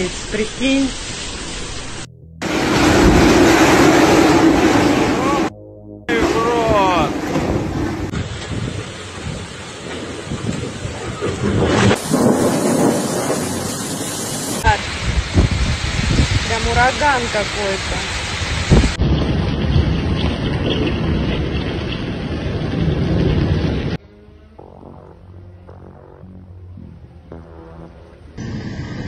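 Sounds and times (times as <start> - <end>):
heavy rain: 0.0 - 5.5, 6.1 - 24.0
storm wind on microphone: 2.4 - 5.5, 6.1 - 24.0, 28.4 - 29.0.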